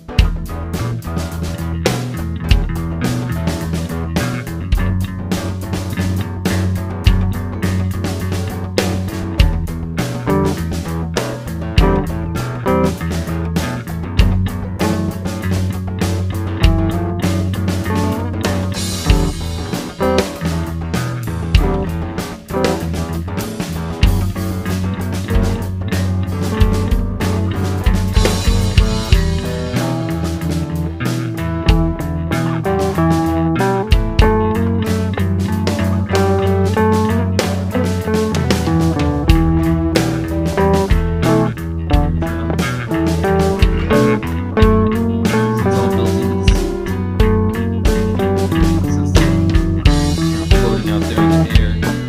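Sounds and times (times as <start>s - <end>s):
bass guitar: 0.0s - 52.0s
electric guitars: 0.0s - 52.0s
steady drum beat: 0.0s - 52.0s.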